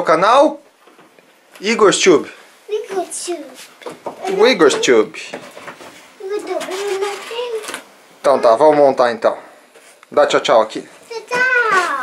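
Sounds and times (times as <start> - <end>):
child's wordless vocal sound: 11.1 - 12.0.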